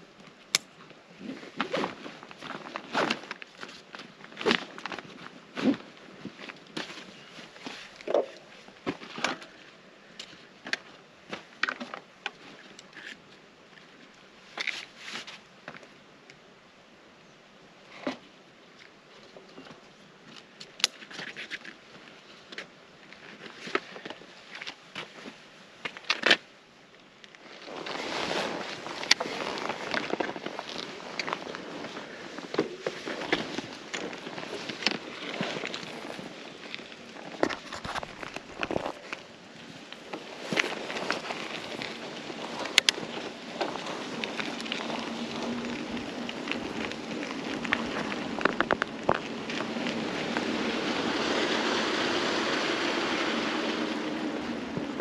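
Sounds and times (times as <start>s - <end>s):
bike tyres rolling on gritty road: 1.1s - 9.6s, 27.3s - 55.0s
bike clicks and rattles: 27.3s - 39.3s, 40.0s - 55.0s.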